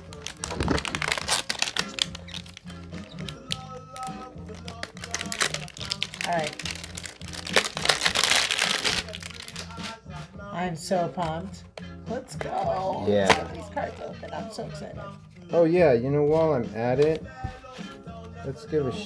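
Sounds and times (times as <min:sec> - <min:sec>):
paper and card crinkling: 0:00.0 - 0:10.0
background music: 0:00.0 - 0:19.0.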